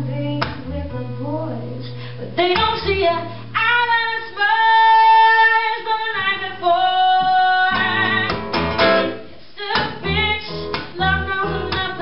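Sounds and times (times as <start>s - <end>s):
woman singing: 0.0s - 8.5s, 9.5s - 12.0s
guitar accompaniment: 0.0s - 12.0s.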